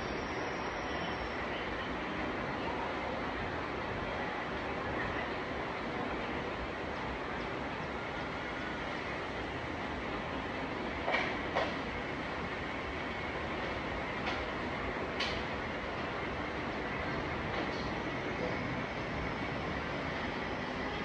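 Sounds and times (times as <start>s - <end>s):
steady rushing noise: 11.9s - 21.0s.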